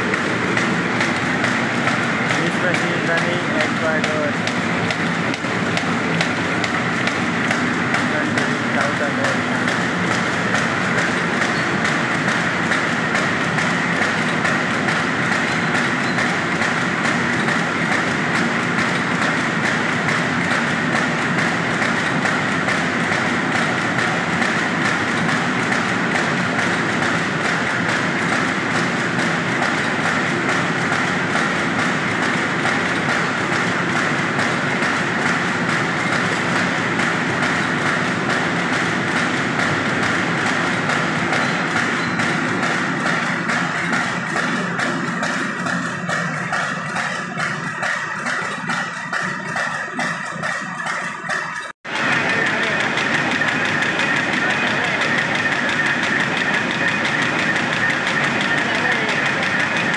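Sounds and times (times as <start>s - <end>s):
machine clattering: 0.0s - 59.9s.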